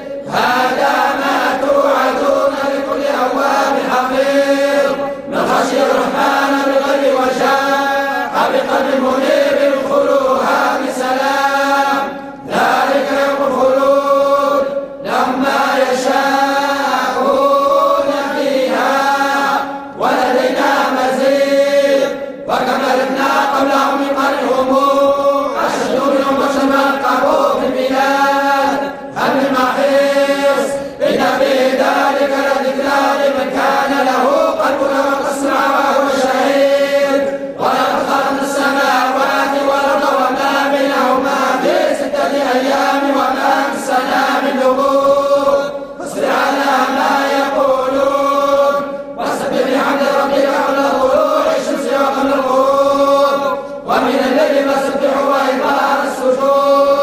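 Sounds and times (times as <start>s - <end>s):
men chanting in unison: 0.0s - 57.0s.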